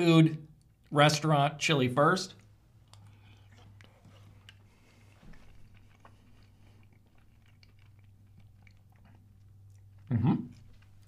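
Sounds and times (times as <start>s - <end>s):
low steady hum: 0.0s - 11.0s
chewing and wet mouth clicks: 2.3s - 11.0s.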